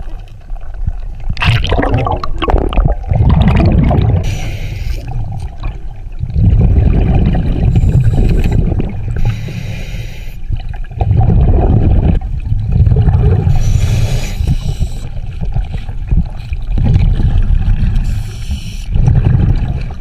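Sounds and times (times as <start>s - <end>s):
bubbling exhale underwater: 1.3s - 9.4s, 10.6s - 14.9s, 18.9s - 20.0s
regulator inhale hiss: 4.2s - 5.1s, 7.7s - 10.5s, 13.5s - 15.2s, 18.0s - 19.0s.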